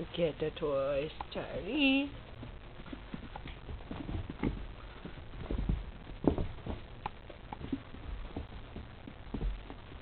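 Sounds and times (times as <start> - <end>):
kitten paws thumping on carpet: 2.4 - 10.0.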